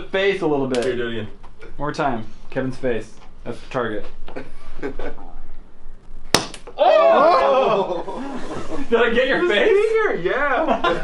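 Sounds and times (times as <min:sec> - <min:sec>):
startled exclamations: 0:06.8 - 0:07.9.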